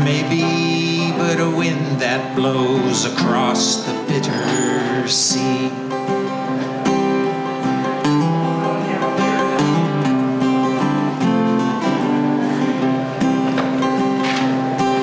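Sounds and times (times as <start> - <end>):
acoustic guitar strumming: 0.0 - 15.0.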